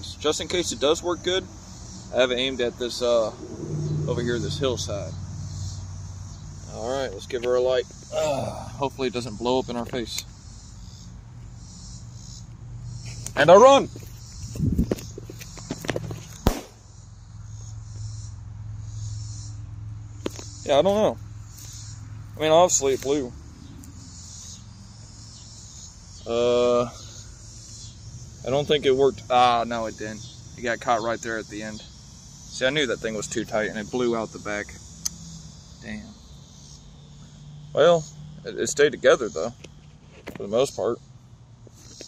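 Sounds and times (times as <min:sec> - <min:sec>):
insects chorus: 0:00.0 - 0:42.0
running footsteps through brush: 0:13.0 - 0:16.6
firecracker bang: 0:16.4 - 0:16.9.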